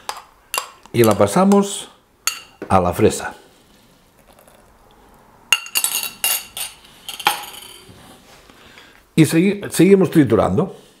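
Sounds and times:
small glass container clinking: 5.6s - 7.9s.

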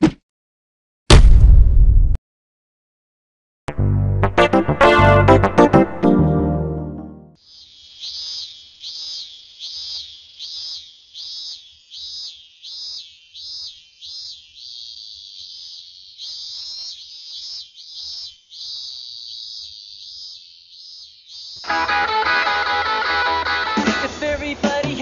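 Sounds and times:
cicada buzzing: 7.4s - 23.8s.

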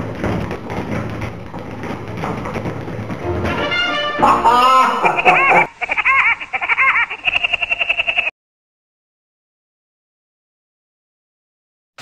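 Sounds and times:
cartoon laugh: 4.2s - 8.3s.

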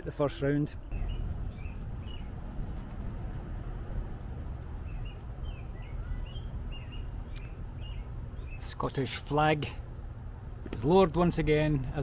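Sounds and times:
low outdoor rumble: 0.0s - 12.0s
small birds chirping: 0.6s - 3.3s, 4.3s - 9.9s.

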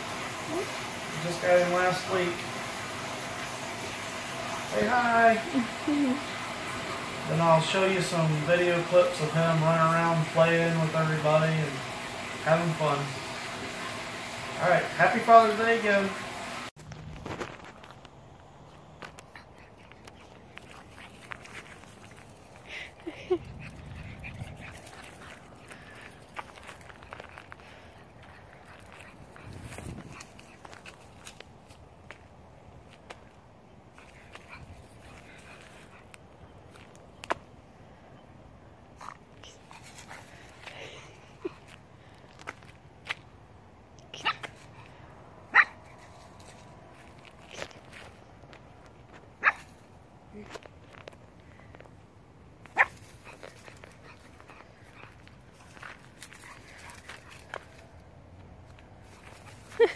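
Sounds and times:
puppy barking high yaps: 44.2s - 44.6s, 45.5s - 46.0s, 49.4s - 49.8s, 52.7s - 53.0s
puppy yipping: 44.2s - 44.6s, 45.5s - 46.0s, 49.4s - 49.8s, 52.7s - 54.9s.

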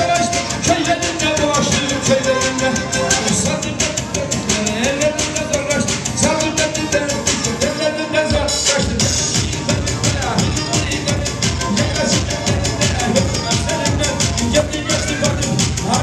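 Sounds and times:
fiddle playing fast dance tune: 0.0s - 16.0s
quick percussion beat: 0.0s - 16.0s.

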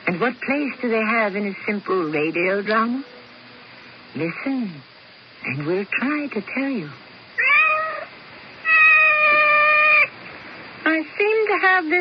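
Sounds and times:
cat meowing: 7.4s - 10.1s.

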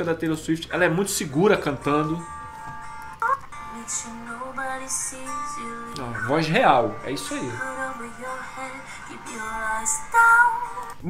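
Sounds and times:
woman singing slowly: 3.2s - 6.2s, 7.4s - 11.0s.

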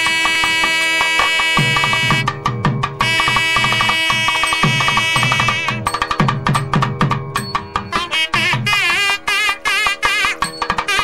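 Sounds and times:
hand drum strokes: 0.0s - 11.0s
melody instrument long notes: 0.0s - 11.0s.

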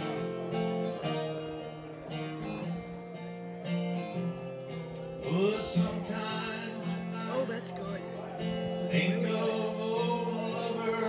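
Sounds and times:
acoustic guitar music: 0.0s - 11.0s
person singing: 5.2s - 7.8s, 8.8s - 11.0s.

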